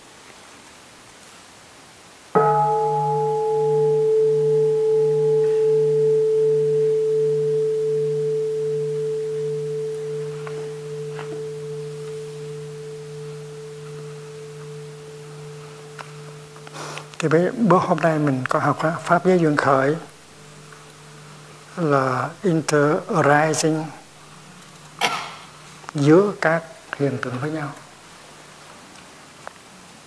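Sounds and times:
bowl bell ringing: 0:02.4 - 0:25.6.

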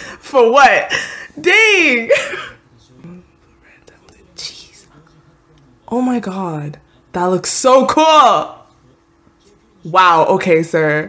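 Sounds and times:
faint male dialogue: 0:02.3 - 0:05.9, 0:08.6 - 0:09.9.

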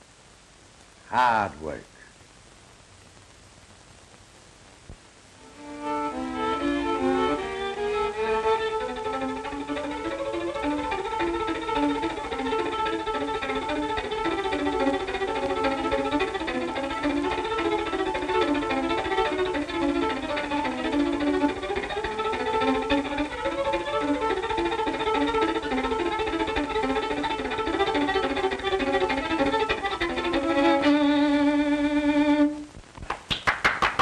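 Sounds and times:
faint steady hiss: 0:00.0 - 0:34.0
solo violin melody: 0:05.4 - 0:32.8.

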